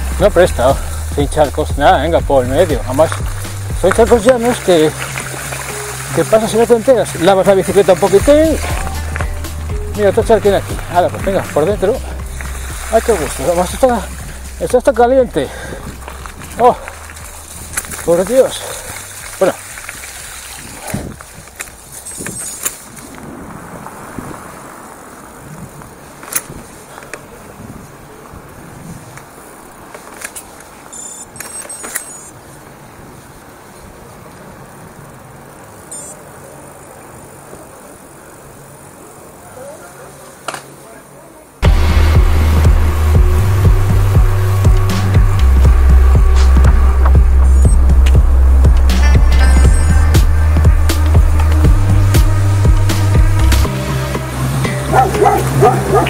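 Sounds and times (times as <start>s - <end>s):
music with heavy bass beat: 0.0s - 6.1s, 7.6s - 18.0s, 41.6s - 56.0s
bicycle tyres rolling: 0.0s - 56.0s.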